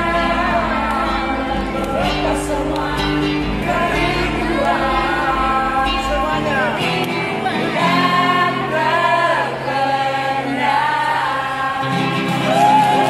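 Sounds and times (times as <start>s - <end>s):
bass accompaniment: 0.0s - 11.0s
acoustic guitar: 0.0s - 13.0s.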